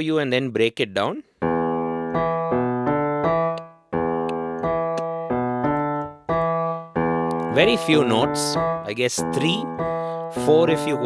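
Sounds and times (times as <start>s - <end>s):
low piano bass riff: 1.4s - 11.0s.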